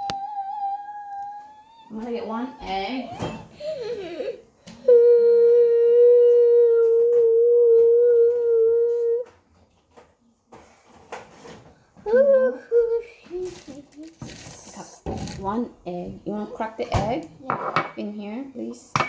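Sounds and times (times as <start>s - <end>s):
girl singing long wordless note: 0.0s - 1.9s, 4.8s - 9.4s, 12.1s - 13.8s.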